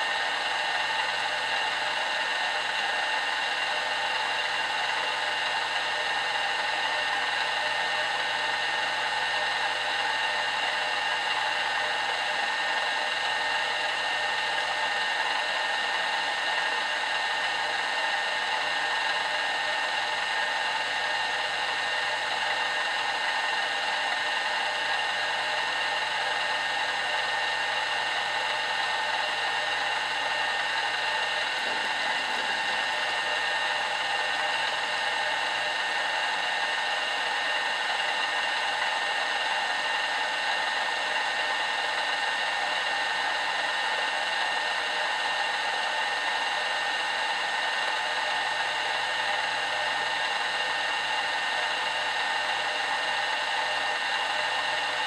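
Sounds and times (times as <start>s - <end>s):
milling machine whirring: 0.0s - 55.0s.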